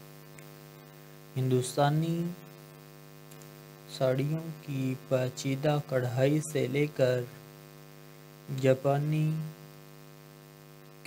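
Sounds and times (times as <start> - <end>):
steady low hum: 0.0 - 11.0
person speaking: 1.4 - 2.5, 3.9 - 7.4, 8.5 - 9.6.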